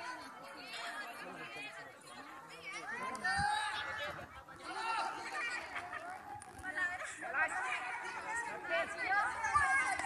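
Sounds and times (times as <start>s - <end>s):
distant people chattering: 0.0s - 10.0s.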